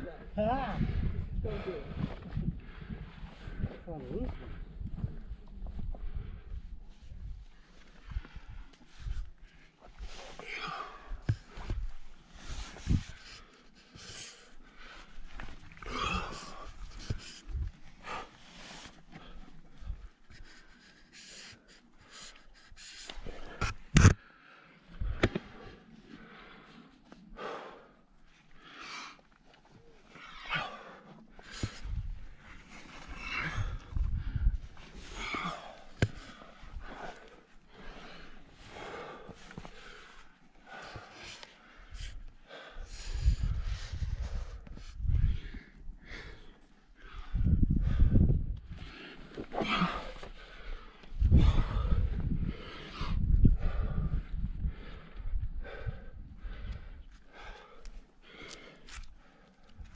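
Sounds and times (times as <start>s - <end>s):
climber panting: 0.8s - 59.9s.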